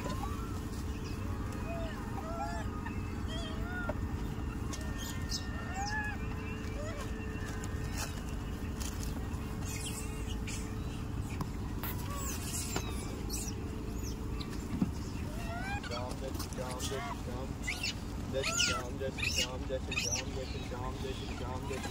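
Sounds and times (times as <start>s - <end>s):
chirping animal calls: 0.0s - 21.9s
low outdoor rumble: 0.0s - 21.9s.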